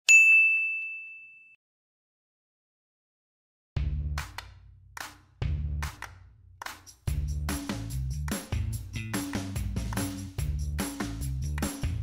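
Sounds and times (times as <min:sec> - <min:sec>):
bright bell-like ding: 0:00.1 - 0:01.6.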